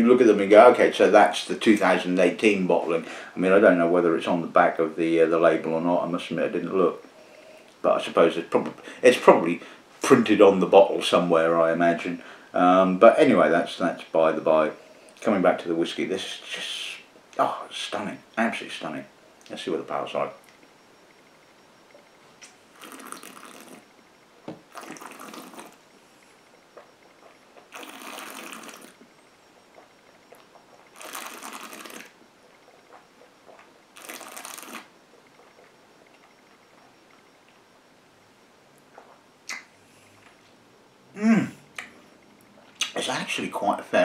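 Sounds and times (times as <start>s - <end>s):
man murmuring: 41.2s - 41.6s.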